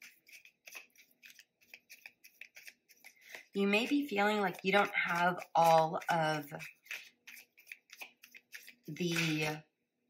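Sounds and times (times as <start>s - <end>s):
tarot cards shuffling: 0.0s - 9.6s.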